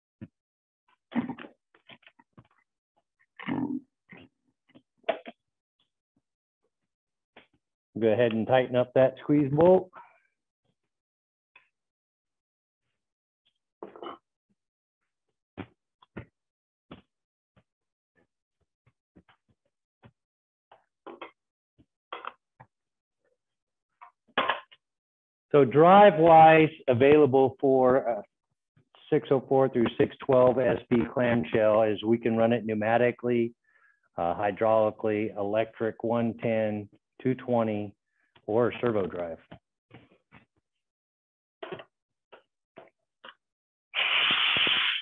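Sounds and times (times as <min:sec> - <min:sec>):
compressed air hissing: 0:44.0 - 0:45.0.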